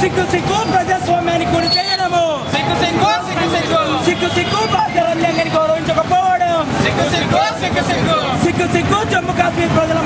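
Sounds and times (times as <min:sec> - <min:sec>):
men chanting slogans: 0:06.7 - 0:08.8.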